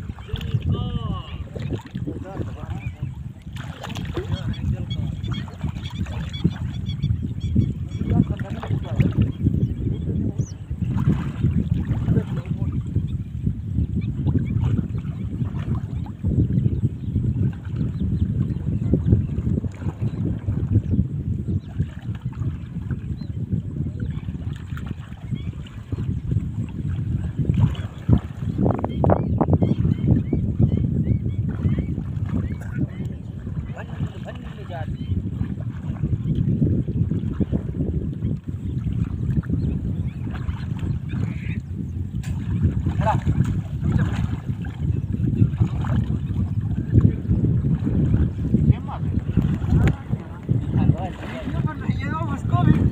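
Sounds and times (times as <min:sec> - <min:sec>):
water sloshing: 0:00.0 - 0:07.1, 0:07.7 - 0:13.1, 0:14.2 - 0:16.8, 0:17.4 - 0:30.3, 0:31.0 - 0:52.9
wind rumbling on microphone: 0:00.0 - 0:52.9.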